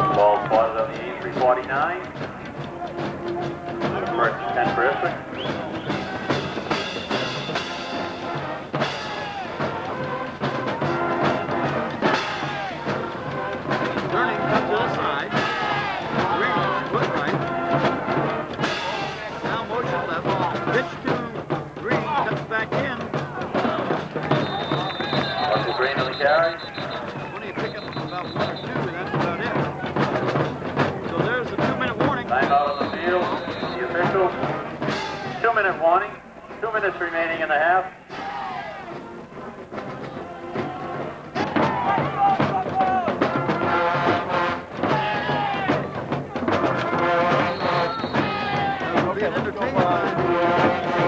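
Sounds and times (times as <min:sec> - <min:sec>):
brass and drums music: 0:00.0 - 0:51.0
crowd voices: 0:00.0 - 0:51.0
referee's whistle: 0:05.3 - 0:06.1, 0:24.3 - 0:28.9, 0:32.4 - 0:34.1, 0:47.4 - 0:48.6.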